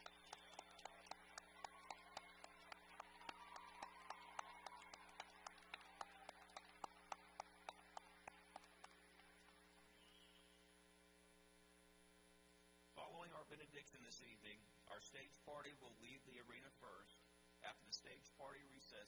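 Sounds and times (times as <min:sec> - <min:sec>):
faint applause: 0:00.0 - 0:09.9
steady electrical hum: 0:05.2 - 0:19.0.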